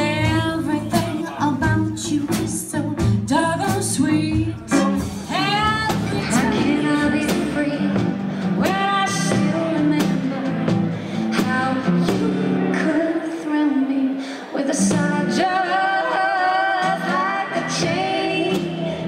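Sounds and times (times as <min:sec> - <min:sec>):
upright bass: 0:00.0 - 0:13.0
lead melody with sliding notes: 0:00.0 - 0:13.1.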